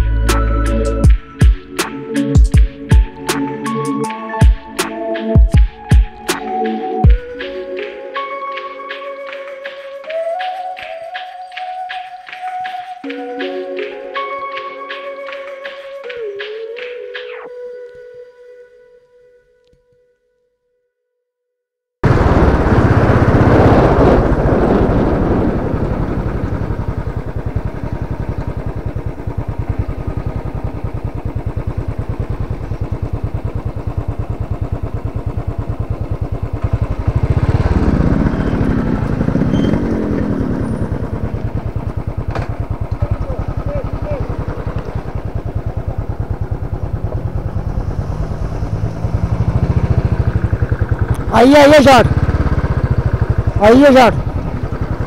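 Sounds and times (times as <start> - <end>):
motorcycle engine running: 0.0 - 3.3, 22.0 - 55.0.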